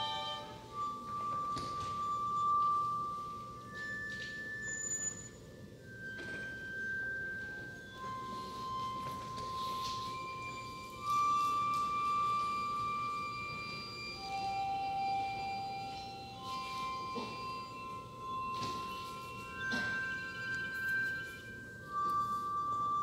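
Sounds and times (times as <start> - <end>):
soft struck notes: 0.0 - 5.2
high held ensemble tones: 0.0 - 23.0.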